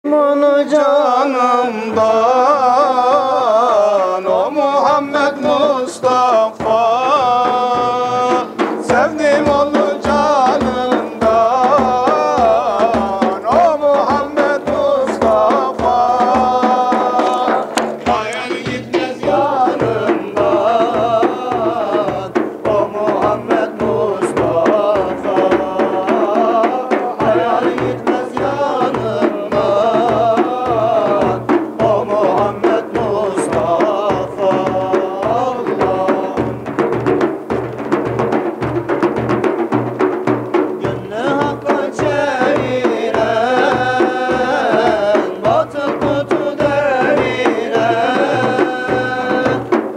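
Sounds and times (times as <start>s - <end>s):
men singing a hymn together: 0.0s - 37.2s, 40.6s - 49.9s
frame drums beating: 0.4s - 49.9s.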